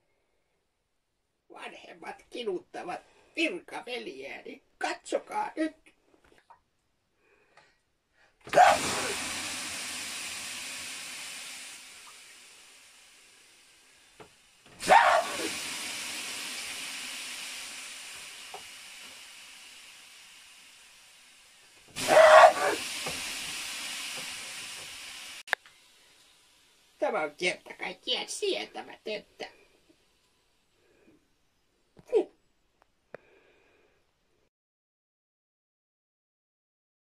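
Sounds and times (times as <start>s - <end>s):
steam hissing: 8.5s - 31.0s
water splashing on hot stones: 14.8s - 19.0s.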